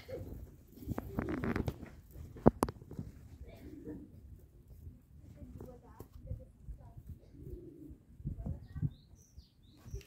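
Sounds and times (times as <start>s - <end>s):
wicker rods rustling and knocking: 0.0s - 3.7s
faint background voices: 3.0s - 10.0s.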